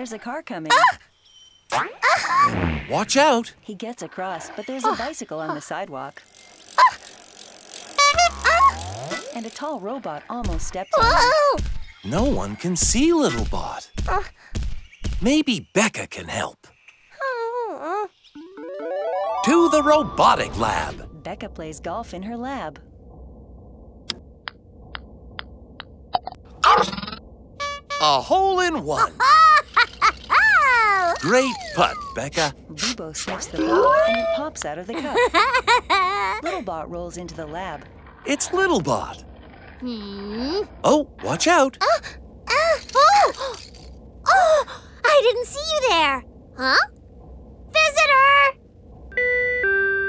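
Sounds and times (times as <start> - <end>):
ball rolling ticks: 6.1 - 10.7, 24.0 - 27.2
high cartoon voice exclamation: 8.0 - 9.4, 33.5 - 34.5
steady electronic tone: 24.8 - 28.8.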